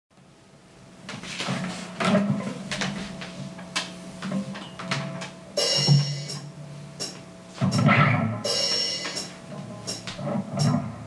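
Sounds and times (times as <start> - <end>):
rustling and knocking handling noise: 1.1 - 5.4.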